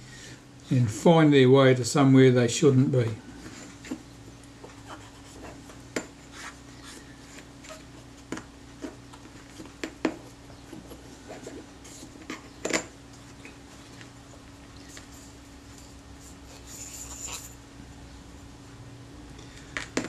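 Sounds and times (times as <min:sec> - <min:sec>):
small tool scraping metal ring: 0:15.8 - 0:17.6.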